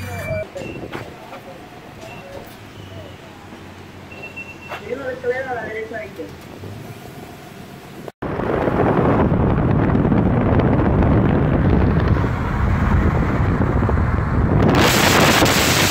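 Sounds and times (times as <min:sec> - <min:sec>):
car road noise: 0:00.0 - 0:15.9
wind rushing over microphone: 0:08.2 - 0:15.9.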